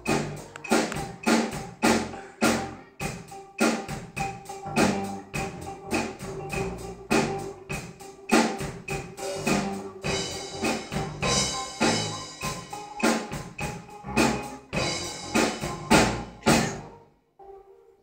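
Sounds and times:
drum kit playing fast: 0.0 - 16.9.

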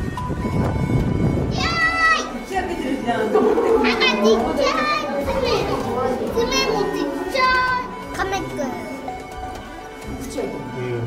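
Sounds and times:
children's high-pitched calls: 1.5 - 2.5, 3.8 - 9.0
young children chattering: 1.5 - 9.8.

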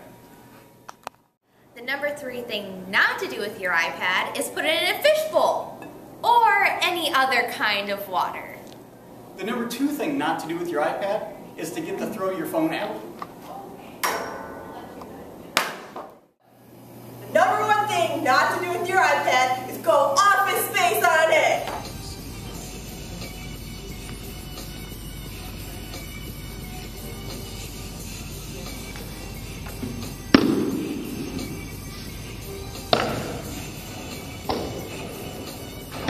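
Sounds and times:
background music: 20.8 - 36.0.

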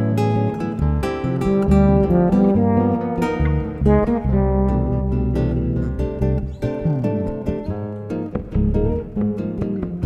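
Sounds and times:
acoustic guitar picking melody: 0.0 - 10.0
bass guitar line: 0.0 - 10.0.

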